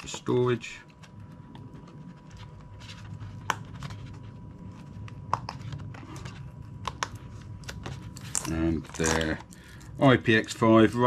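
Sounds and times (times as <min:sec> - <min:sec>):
cardboard rubbing and rustling: 0:00.0 - 0:09.4.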